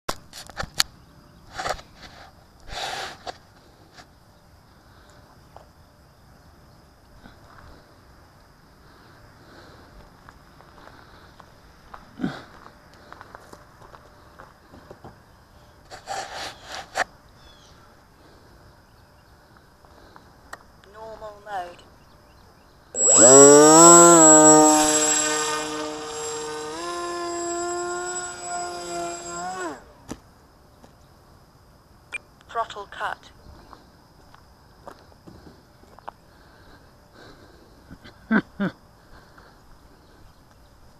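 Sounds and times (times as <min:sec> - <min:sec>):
faint outdoor hiss: 0:00.1 - 0:40.9.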